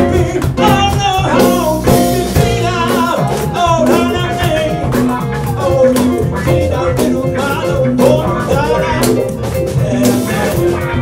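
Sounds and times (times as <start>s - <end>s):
drum strokes: 0.0s - 11.0s
lead vocalist singing: 0.0s - 11.0s
live band playing: 0.0s - 11.0s.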